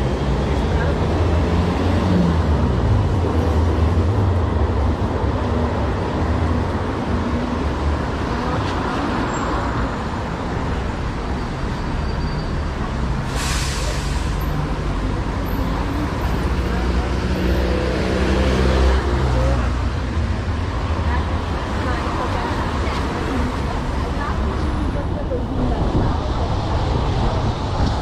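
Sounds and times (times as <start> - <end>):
traffic rumble: 0.0 - 28.0
tyres hissing on wet asphalt: 13.2 - 14.7.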